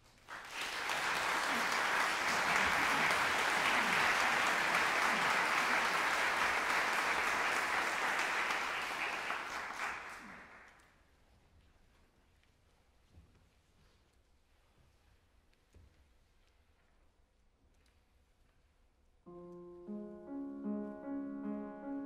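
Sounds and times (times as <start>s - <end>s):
audience applauding: 0.2s - 10.8s.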